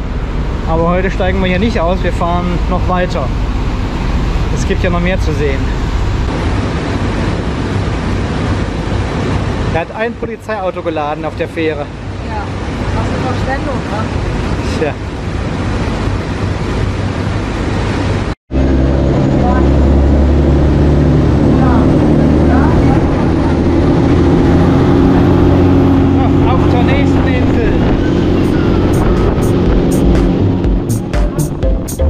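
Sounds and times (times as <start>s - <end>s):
rush of boat wake: 0.0s - 31.1s
boat engine droning: 0.0s - 32.0s.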